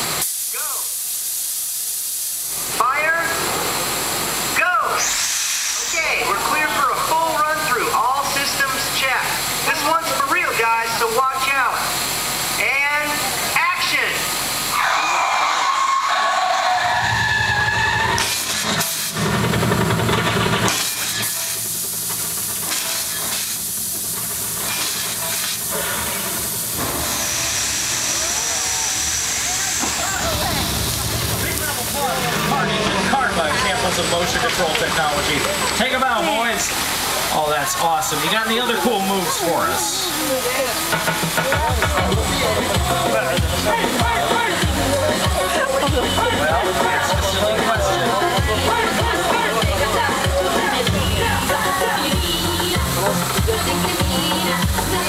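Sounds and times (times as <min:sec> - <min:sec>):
water jet spraying: 0:00.0 - 0:55.0.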